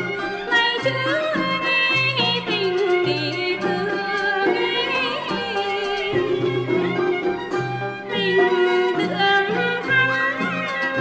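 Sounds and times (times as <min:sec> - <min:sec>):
bowed strings accompaniment: 0:00.0 - 0:11.0
person singing wavering folk song: 0:00.0 - 0:11.0.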